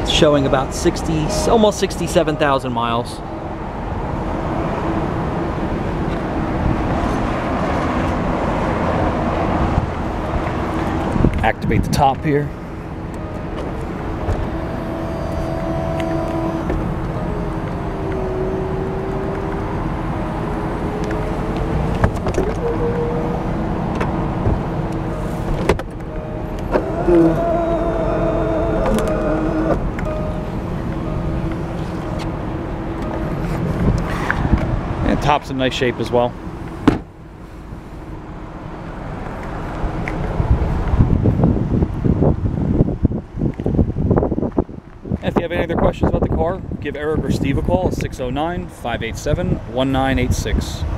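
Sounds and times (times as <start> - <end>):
wind buffeting microphone: 3.6 - 35.3, 39.0 - 50.9.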